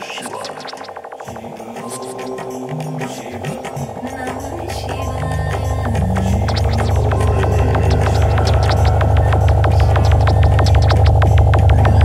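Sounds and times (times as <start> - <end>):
psychedelic trance music: 0.0 - 12.0.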